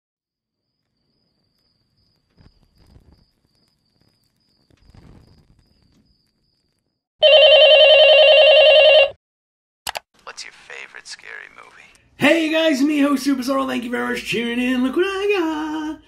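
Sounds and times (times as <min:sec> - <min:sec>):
sharp click: 0:09.9 - 0:10.1.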